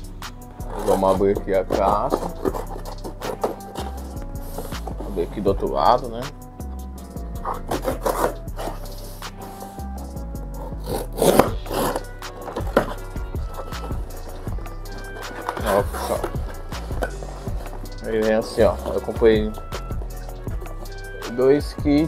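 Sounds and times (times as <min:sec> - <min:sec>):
background music with bass: 0:00.0 - 0:22.0
cardboard box flaps scraping: 0:00.7 - 0:05.4, 0:07.4 - 0:09.8, 0:10.7 - 0:19.6.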